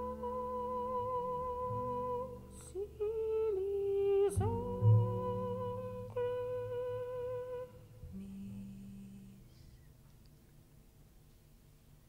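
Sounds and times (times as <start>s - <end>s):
jazz chamber ensemble playing: 0.0s - 7.2s.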